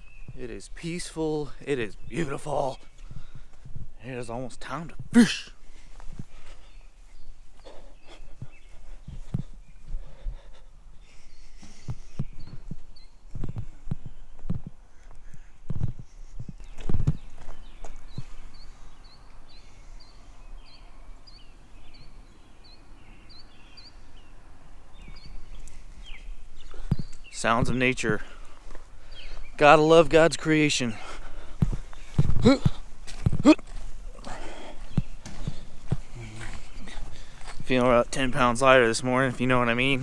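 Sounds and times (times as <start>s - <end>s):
bird chirping: 0.0s - 40.0s
footsteps walking: 2.4s - 4.0s, 4.9s - 18.7s, 24.9s - 30.1s, 30.8s - 40.0s.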